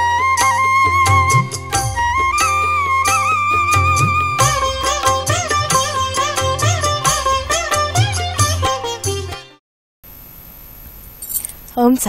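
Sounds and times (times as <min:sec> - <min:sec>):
faint steady hiss: 0:10.1 - 0:12.0.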